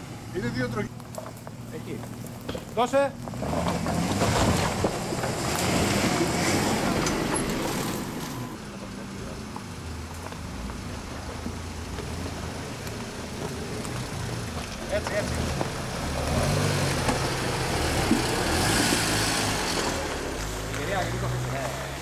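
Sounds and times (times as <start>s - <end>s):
suv engines under throttle: 0.0s - 22.0s.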